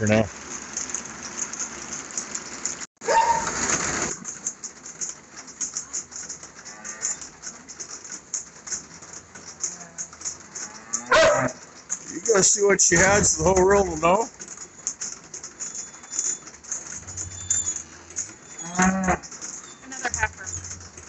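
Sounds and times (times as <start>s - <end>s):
cattle mooing: 6.7s - 7.3s, 10.6s - 11.6s, 18.6s - 19.2s.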